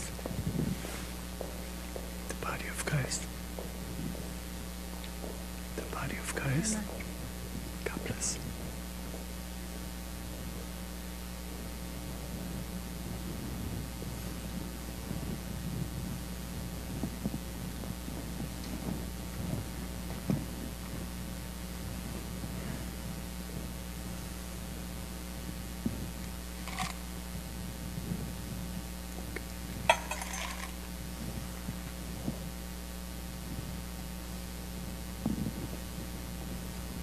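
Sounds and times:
steady low hum: 0.0 - 37.0
person whispering: 2.3 - 3.4, 5.8 - 7.1, 7.8 - 8.5.

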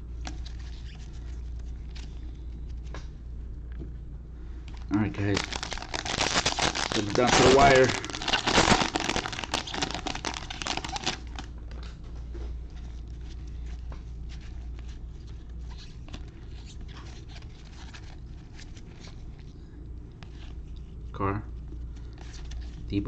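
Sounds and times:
steady low hum: 0.0 - 23.0
cards rustling and clicking: 4.7 - 11.9
plastic wrapper crinkling: 4.8 - 11.5.

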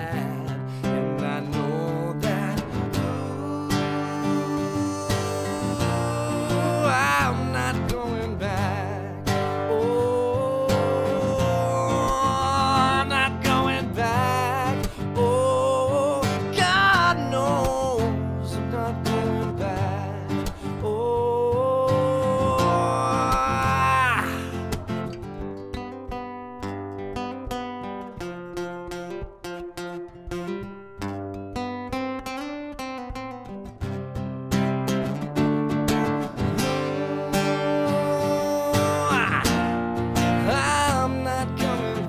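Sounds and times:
acoustic guitar strumming: 0.0 - 42.0
man singing held notes: 1.6 - 8.9.

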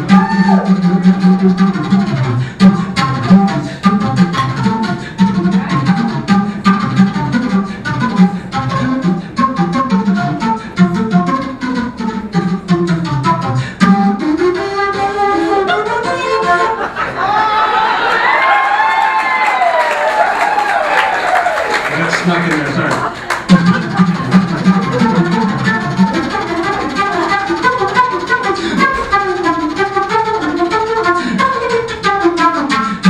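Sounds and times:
jazz flute solo: 0.0 - 16.9, 23.2 - 33.0.

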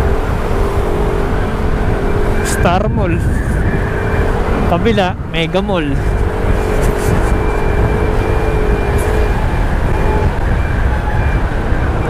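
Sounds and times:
road rumble: 0.0 - 12.0
scooter engine humming: 0.0 - 12.0
wind noise: 0.0 - 12.0.

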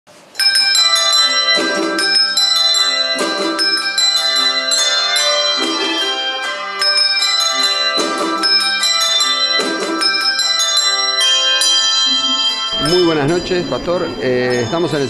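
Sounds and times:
deeper bells ringing: 0.4 - 15.0
handbell choir playing: 0.4 - 15.0.

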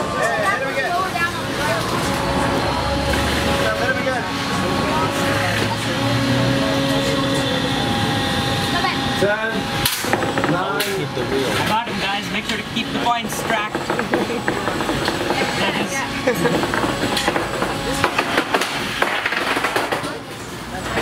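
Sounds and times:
spectators chatting: 0.0 - 21.0.

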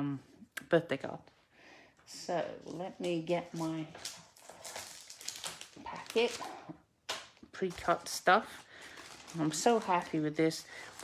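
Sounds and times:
plastic packet crinkling: 3.0 - 11.0.

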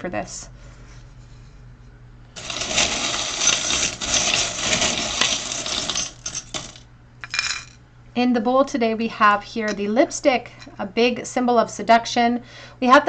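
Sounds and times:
metal charms rattling in wooden bowl: 2.4 - 7.7.

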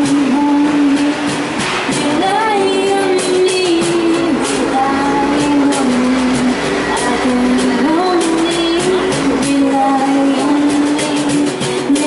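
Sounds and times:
acoustic guitar: 0.0 - 12.0
cajon playing: 0.0 - 12.0
person singing a long note: 2.0 - 12.0
steady low rumble: 3.7 - 10.3.

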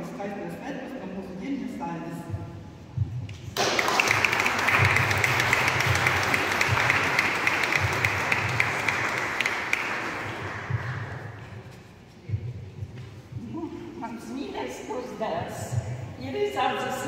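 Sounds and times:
congregation applauding: 3.6 - 11.4.

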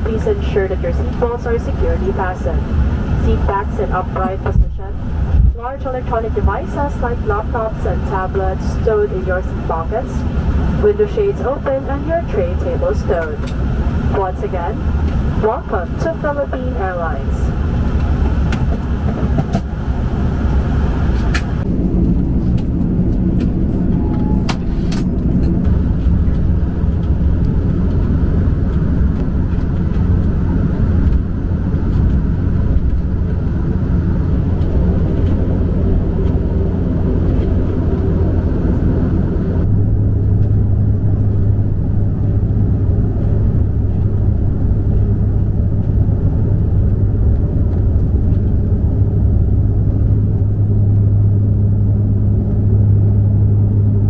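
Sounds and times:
propeller engine drone in cabin: 0.0 - 54.0.

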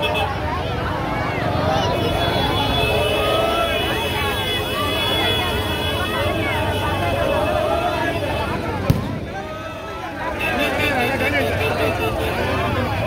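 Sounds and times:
crowd talking and calling out: 0.0 - 13.0
truck engines rumbling: 0.0 - 13.0.

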